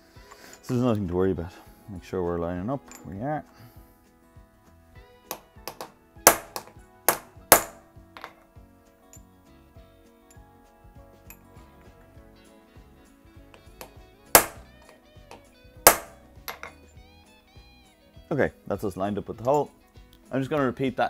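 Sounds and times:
hammer tapping metal punch: 5.3s - 8.4s, 13.8s - 14.7s, 15.3s - 16.8s.

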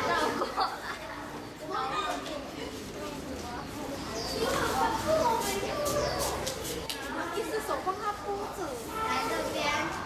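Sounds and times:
indistinct voices talking quietly: 0.0s - 10.0s
outdoor background noise: 0.0s - 10.0s.

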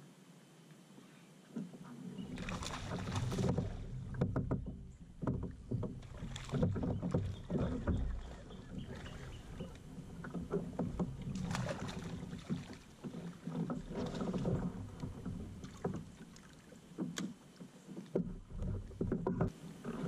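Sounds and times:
water slapping kayak hull: 1.6s - 20.0s
knocks and clicks: 3.1s - 11.6s, 18.1s - 19.6s.

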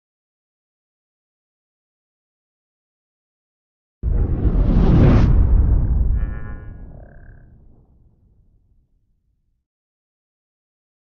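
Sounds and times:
low rumble: 4.0s - 8.8s.

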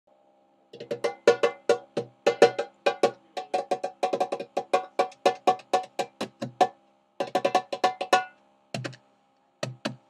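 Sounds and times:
hand drum struck with hands: 0.8s - 9.0s.

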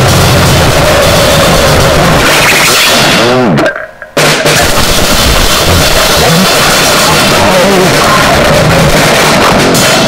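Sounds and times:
harsh distorted noise: 0.0s - 10.0s
pounding drums: 0.0s - 10.0s.

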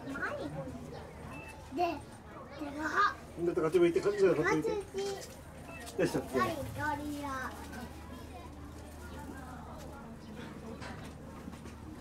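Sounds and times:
onlookers talking: 0.0s - 12.0s.

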